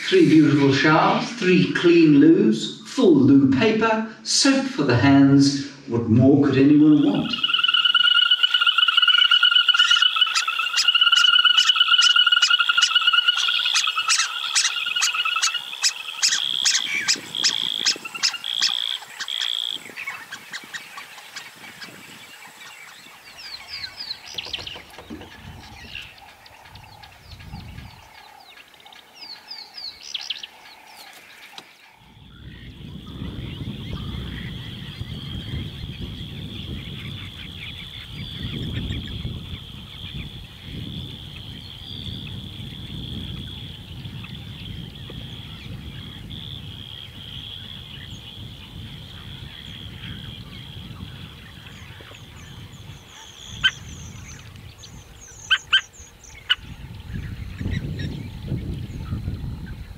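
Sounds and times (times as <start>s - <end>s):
frogs trilling: 6.5s - 59.9s
frog chirps: 6.7s - 59.9s.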